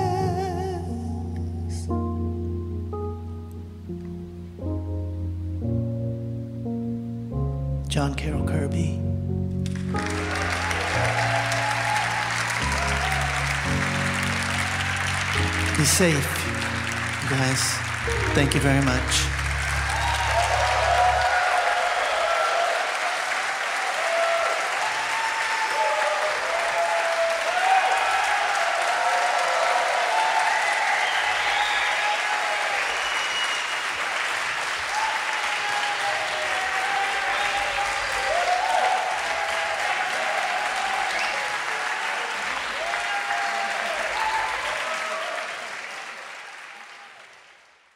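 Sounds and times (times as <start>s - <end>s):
audience applauding: 9.6s - 47.9s
voices cheering: 10.0s - 47.4s.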